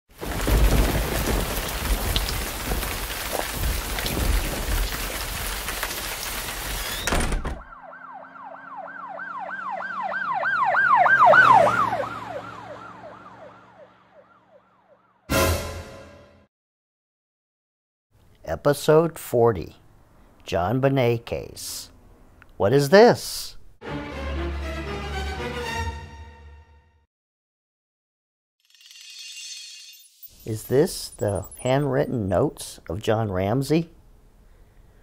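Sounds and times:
siren yelping: 7.6s - 15.3s.

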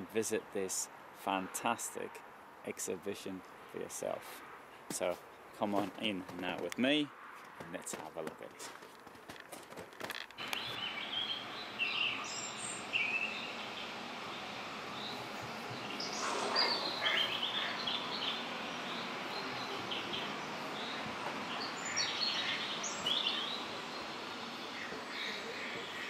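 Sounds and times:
steady background hiss: 0.0s - 8.6s, 10.4s - 26.0s
small birds chirping: 10.4s - 26.0s.

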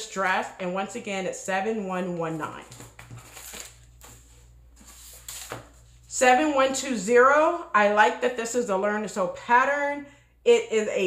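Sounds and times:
paper envelopes rustling: 2.2s - 6.0s.

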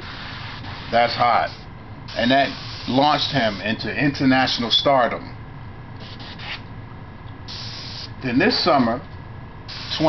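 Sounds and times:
airbrush spraying: 0.0s - 3.7s, 6.0s - 6.6s, 7.5s - 8.1s, 9.7s - 10.0s.

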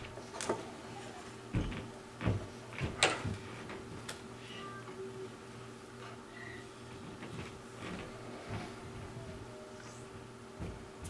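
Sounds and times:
low electrical hum: 0.0s - 11.0s
faint ticks and knocks: 1.5s - 4.2s, 6.9s - 9.5s, 10.1s - 11.0s.

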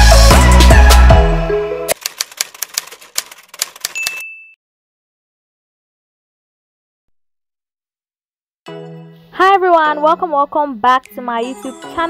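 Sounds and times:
background music: 0.0s - 2.0s, 8.7s - 12.0s
typewriter keys clacking: 1.9s - 4.3s
typewriter bell ding: 3.6s - 4.6s.

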